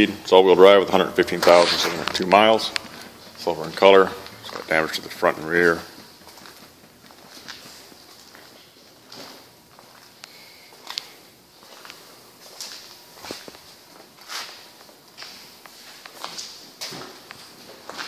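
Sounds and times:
footsteps on concrete floor: 1.2s - 18.0s.

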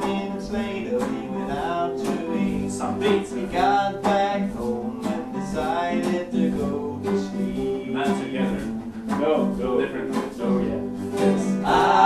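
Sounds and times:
men singing loudly: 0.0s - 8.3s, 10.5s - 12.0s
acoustic guitars strumming: 0.0s - 12.0s.

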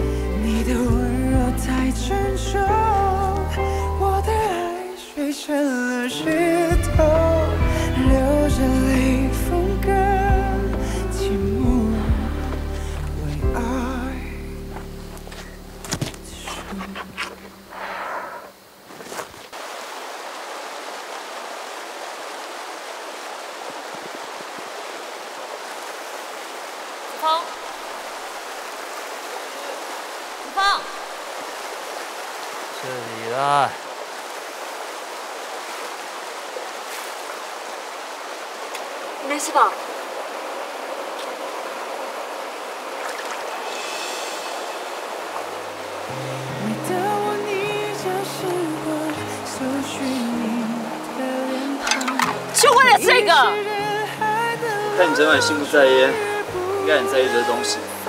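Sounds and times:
gentle guitar music: 0.0s - 5.1s, 6.0s - 17.1s, 45.7s - 58.0s
stream water running over rocks: 0.0s - 58.0s.

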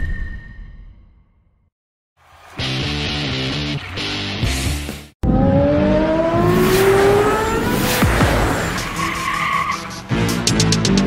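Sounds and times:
rising engine-like whine: 5.2s - 9.3s
music with steady beat: 9.9s - 11.0s.

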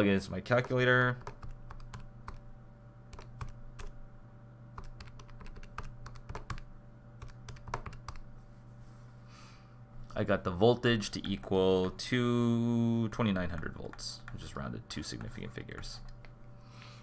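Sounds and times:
faint steady hum: 0.0s - 17.0s
calculator keys clicking: 3.1s - 3.9s, 4.8s - 6.6s, 7.2s - 8.2s.

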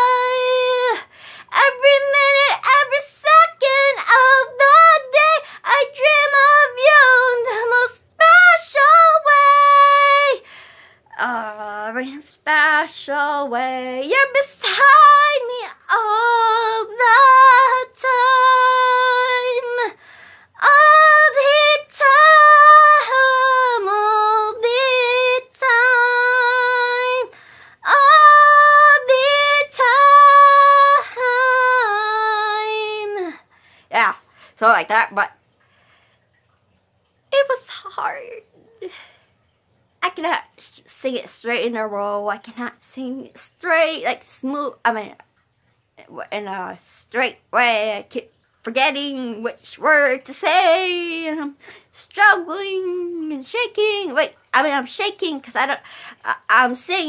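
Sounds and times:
woman singing alone: 0.0s - 10.4s, 11.1s - 20.0s, 20.6s - 35.3s, 46.0s - 57.0s.

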